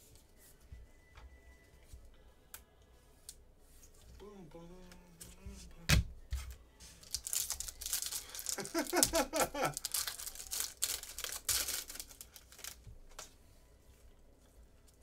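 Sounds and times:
wrapper tearing and crinkling: 7.0 - 12.9.

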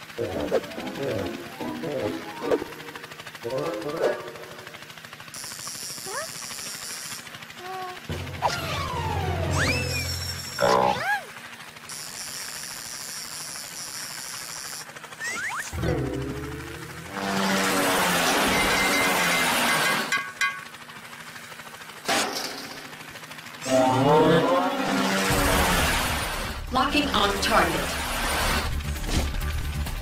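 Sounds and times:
cartoon music: 0.0 - 3.9, 7.6 - 11.3
sharp hits: 8.1 - 10.6
slide whistle glides: 8.5 - 10.6.

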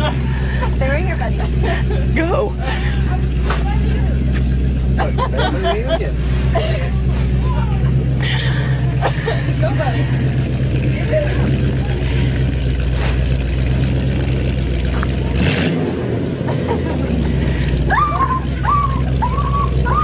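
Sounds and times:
voices calling: 0.0 - 15.4, 16.4 - 20.0
car engine idling: 0.0 - 20.0.

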